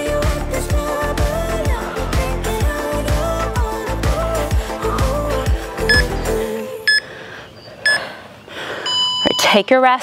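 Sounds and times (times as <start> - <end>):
backing music with steady beat: 0.0 - 6.8
electronic timer beeps: 5.9 - 6.1, 7.8 - 8.1, 8.9 - 9.6.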